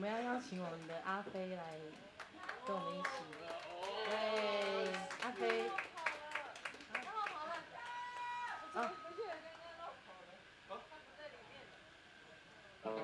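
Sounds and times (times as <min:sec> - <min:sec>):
people talking: 0:00.0 - 0:07.9, 0:08.8 - 0:11.7
audience clapping: 0:01.7 - 0:09.7.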